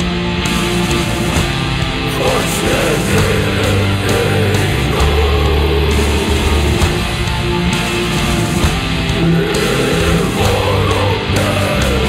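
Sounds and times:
doom metal guitars and bass: 0:00.0 - 0:12.0.

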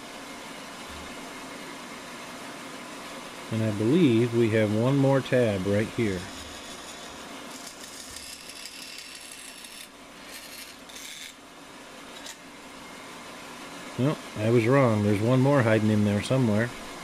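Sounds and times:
bandsaw cutting wood: 0:05.8 - 0:11.4.

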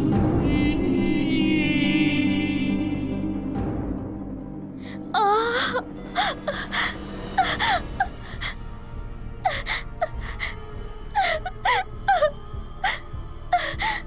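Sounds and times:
tense background music: 0:00.0 - 0:14.0
woman gasping and moaning: 0:04.8 - 0:08.6, 0:09.4 - 0:14.0.

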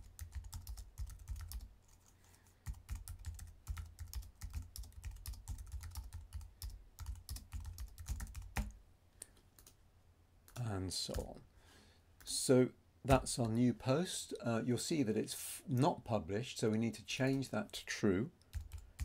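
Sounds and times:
typing on keyboard: 0:00.0 - 0:08.8, 0:18.4 - 0:19.0.

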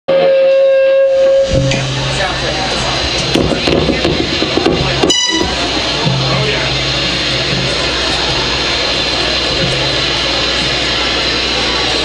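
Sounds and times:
live band playing amplified: 0:00.1 - 0:12.0
brief high-pitched tone: 0:05.0 - 0:06.2.

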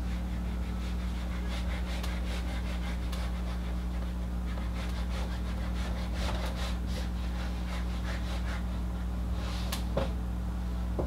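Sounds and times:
eraser scrubbing a whiteboard: 0:00.0 - 0:09.8
steady low hum: 0:00.0 - 0:11.0.

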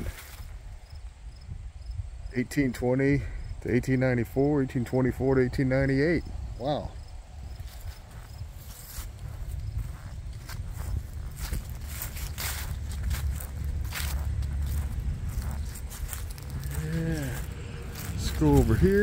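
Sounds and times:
footsteps through grass and leaves: 0:00.0 - 0:00.6, 0:07.6 - 0:19.0
wind rumbling on microphone: 0:00.0 - 0:02.4, 0:05.2 - 0:19.0.

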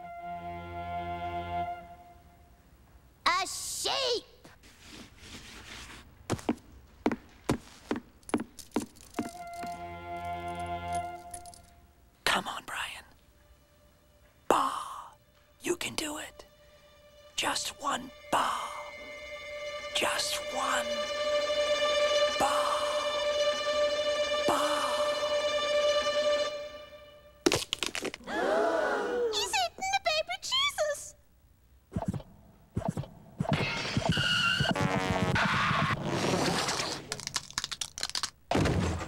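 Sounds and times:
held musical chord: 0:00.0 - 0:02.5, 0:09.4 - 0:12.1, 0:15.2 - 0:27.4
breathy whispered voice: 0:12.2 - 0:13.2, 0:14.5 - 0:15.2, 0:15.8 - 0:16.5, 0:17.4 - 0:19.1, 0:22.4 - 0:23.1, 0:24.5 - 0:25.4
cartoon breaking cracks and crunches: 0:27.5 - 0:28.2, 0:36.3 - 0:39.0
person crying out: 0:28.2 - 0:29.5.

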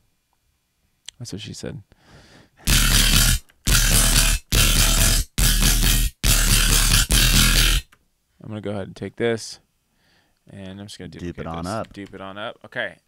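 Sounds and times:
deep sub bass: 0:02.7 - 0:07.8
heavy saturated bass synth notes: 0:02.7 - 0:07.8.

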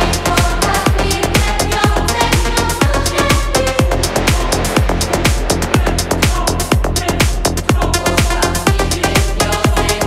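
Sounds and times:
hi-hats ticking: 0:00.0 - 0:10.0
kick drum: 0:00.0 - 0:10.0.

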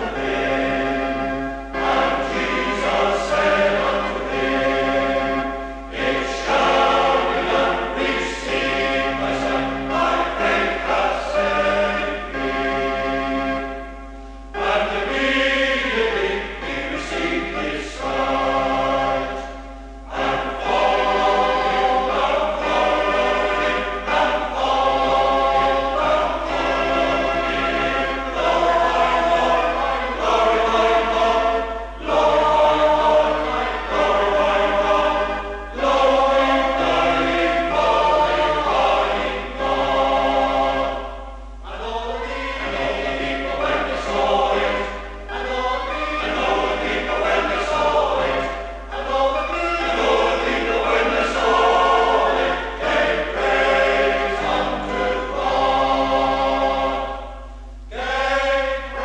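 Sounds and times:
male voice choir singing: 0:00.0 - 0:13.8, 0:14.6 - 0:59.0
steady low hum: 0:00.0 - 0:59.0.

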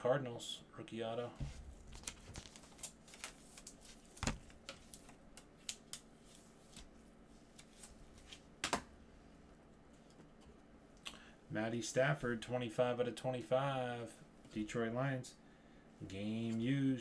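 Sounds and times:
plastic and card rustling: 0:01.4 - 0:08.8.

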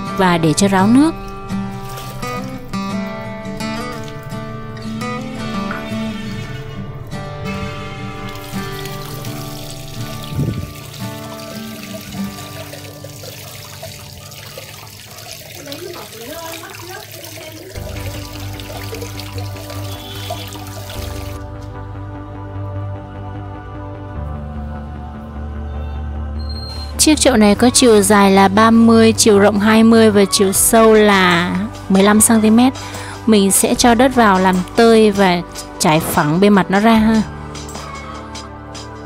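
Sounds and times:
background music: 0:00.0 - 0:39.0
water trickling and splashing: 0:00.6 - 0:21.4.

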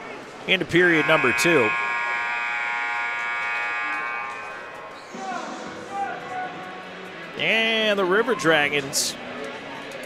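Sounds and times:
arena horn blast: 0:00.7 - 0:05.4.

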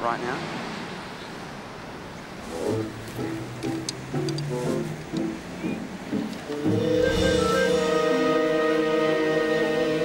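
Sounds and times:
ocean surf on a beach: 0:00.0 - 0:07.2.

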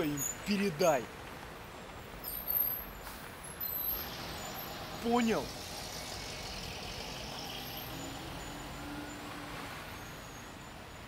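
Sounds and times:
distant road traffic rumble: 0:00.0 - 0:11.0.

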